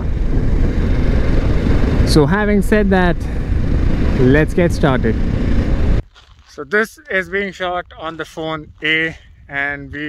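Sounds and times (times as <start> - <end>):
wind buffeting microphone: 0.0 - 6.1, 7.2 - 10.0.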